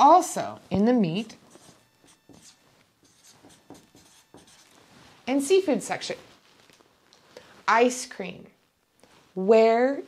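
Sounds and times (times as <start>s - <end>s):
marker writing on paper: 1.3s - 4.8s.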